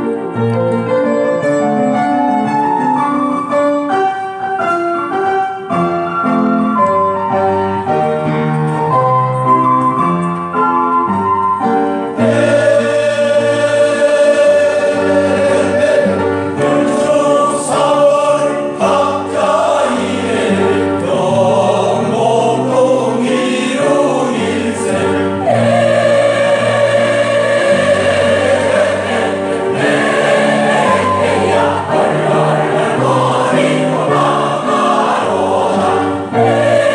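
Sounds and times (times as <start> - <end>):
piano passage: 0.0 - 36.9
choir singing in harmony: 12.0 - 36.9.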